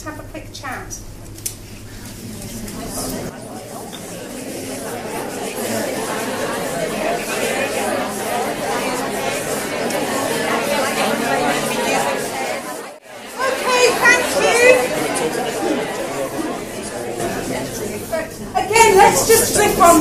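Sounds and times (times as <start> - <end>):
audience chatter: 1.7 - 20.0.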